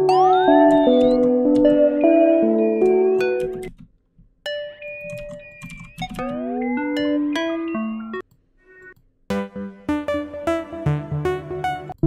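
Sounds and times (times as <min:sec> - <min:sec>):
synth notes sliding upward: 0:00.0 - 0:02.7.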